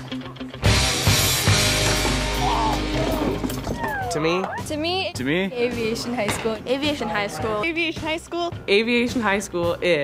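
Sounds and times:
background music of held notes: 0:00.0 - 0:10.0.

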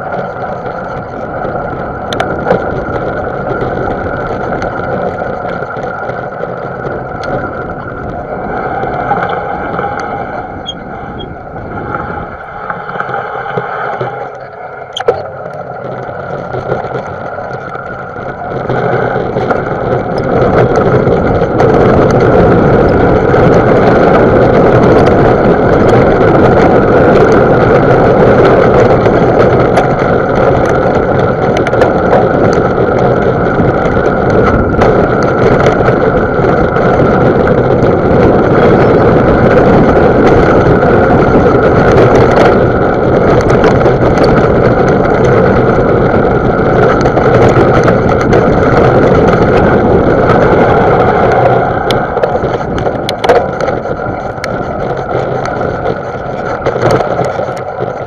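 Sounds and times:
bike rattling over bumps: 0:00.0 - 0:58.0
bike tyre noise on dirt: 0:00.0 - 0:58.0
wind over microphone: 0:00.0 - 0:58.0.

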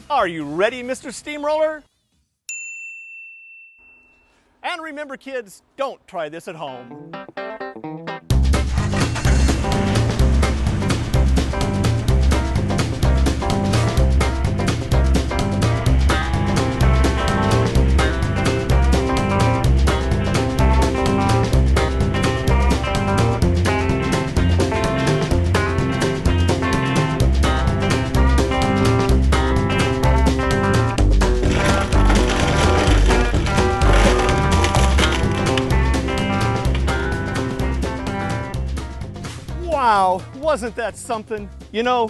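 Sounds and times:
instrumental music with bass line: 0:06.8 - 0:42.0.

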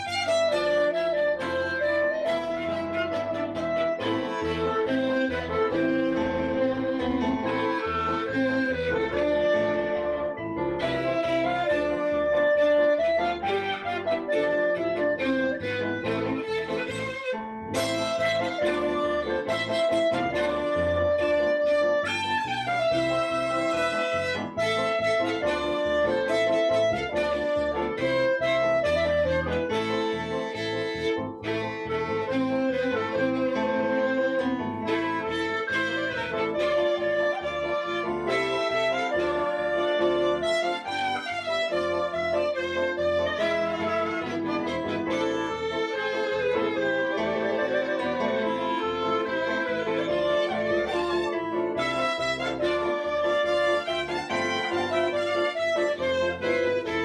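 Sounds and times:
klezmer band playing: 0:00.0 - 0:57.0.

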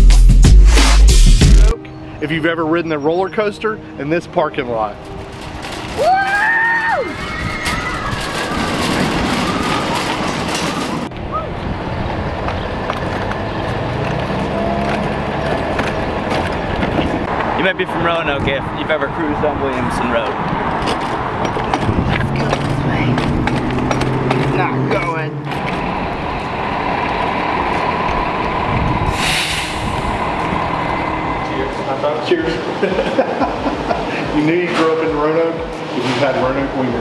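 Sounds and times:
passing vehicles: 0:01.8 - 0:37.0
plastic wheels rumbling on concrete: 0:04.8 - 0:11.4, 0:12.1 - 0:18.6, 0:19.4 - 0:29.2
brief hiss: 0:29.1 - 0:30.0.

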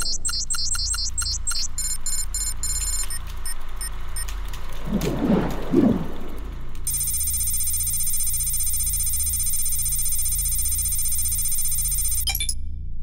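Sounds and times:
electronic bleeps: 0:00.0 - 0:04.3, 0:06.9 - 0:12.6
low hum: 0:00.0 - 0:13.0
warbling sound: 0:03.8 - 0:12.2.

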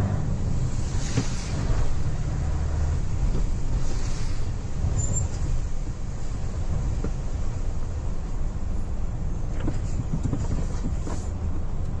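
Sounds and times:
diesel engine rumble: 0:00.0 - 0:12.0
tyre hiss on wet road: 0:00.4 - 0:11.6.

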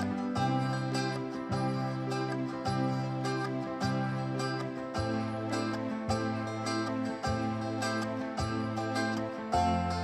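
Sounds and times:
electronic keyboard: 0:00.0 - 0:10.0
plucked acoustic guitar: 0:00.0 - 0:10.0.

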